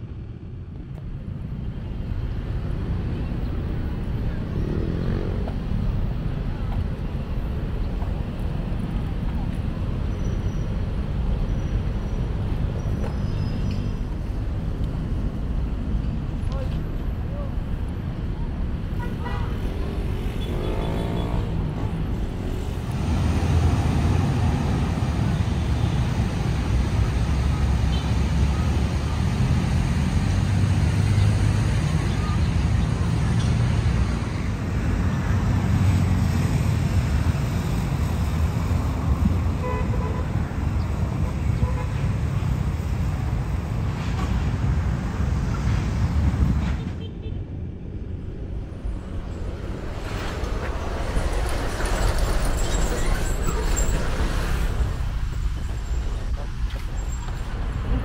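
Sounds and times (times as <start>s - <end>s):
rumble of passing cars and buses: 0.0s - 58.0s.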